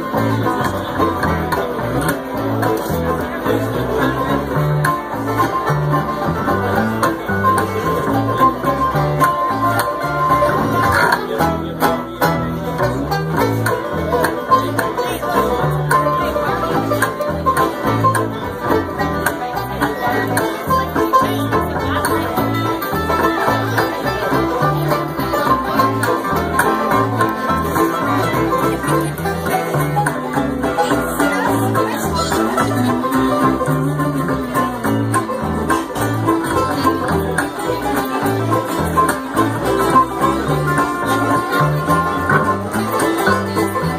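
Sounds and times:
acoustic guitar: 0.0 - 43.9
banjo: 0.0 - 43.9
mandolin: 0.0 - 43.9
upright bass: 0.0 - 43.9.

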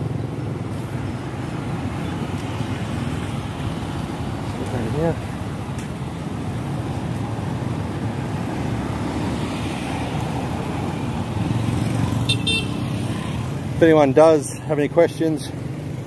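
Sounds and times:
scooters and cars passing: 0.0 - 16.0.

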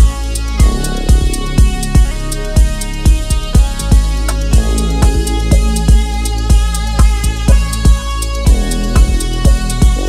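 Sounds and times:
deep sustained bass: 0.0 - 10.0
kick drum: 0.0 - 10.0
pulsing synth pattern: 0.0 - 10.0
ticking hi-hats: 0.0 - 10.0.

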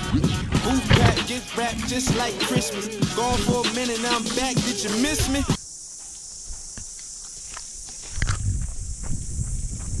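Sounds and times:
handling thumps on microphone: 0.7 - 2.7.

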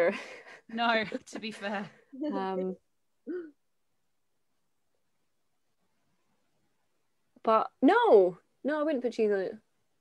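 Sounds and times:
woman humming: 3.3 - 3.6.

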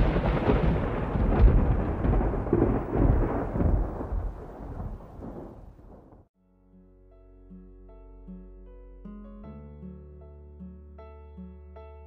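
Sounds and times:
thunder clap and rumbling: 0.0 - 6.3.

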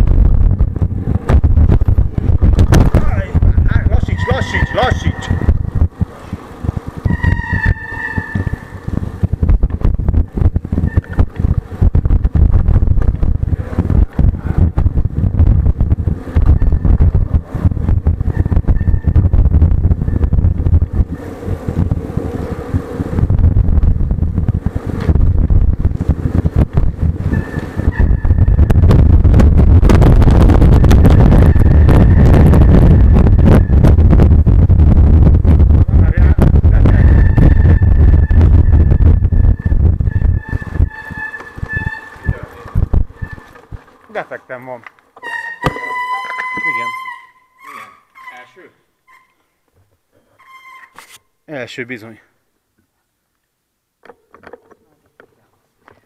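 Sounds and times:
knocks from rough road: 0.7 - 3.1, 28.6 - 31.7, 44.8 - 46.7.

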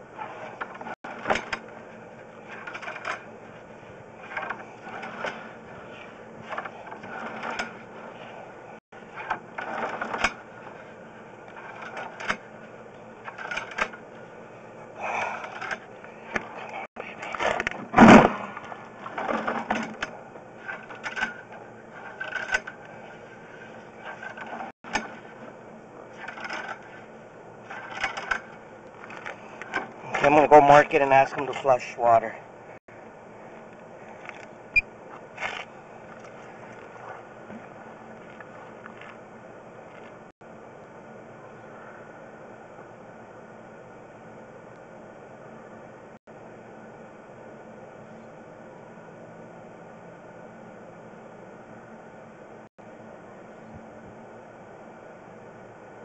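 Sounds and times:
low steady hum: 0.0 - 56.0
cable reel clicking and knocking: 0.5 - 1.8, 2.5 - 3.3, 4.2 - 7.9, 9.2 - 10.7, 11.5 - 14.0, 19.1 - 23.0, 24.0 - 25.4, 26.2 - 27.1, 27.7 - 30.3.

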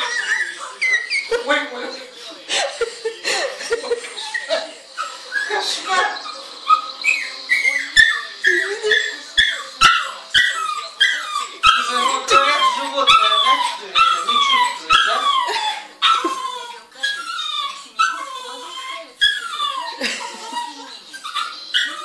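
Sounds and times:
small dog whining: 4.2 - 22.0.

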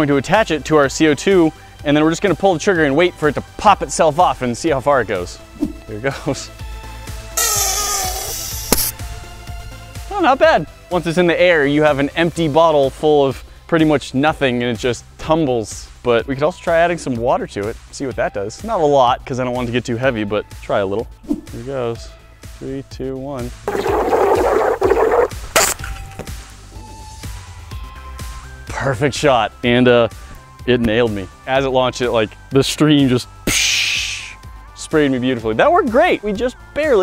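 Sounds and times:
background music: 0.0 - 37.0
stopper popping off bottle: 7.4 - 9.0, 23.7 - 26.3
compressed gas hissing: 7.4 - 9.4, 23.7 - 25.8.

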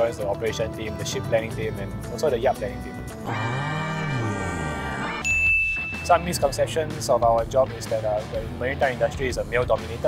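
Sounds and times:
drawn-out voice: 3.3 - 5.2
bright bell ding: 5.2 - 6.4.

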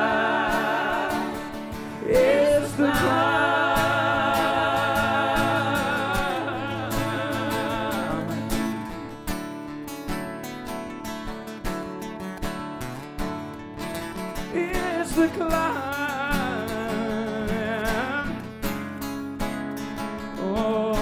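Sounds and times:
person singing with vibrato: 0.0 - 9.1
acoustic guitar strumming: 0.0 - 21.0.

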